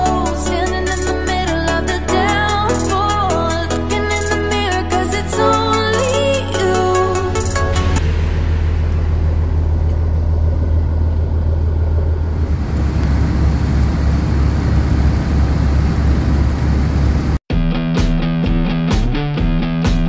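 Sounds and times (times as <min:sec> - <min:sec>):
music: 0:00.0 - 0:09.1, 0:17.5 - 0:20.0
boat engine drone: 0:08.0 - 0:17.4.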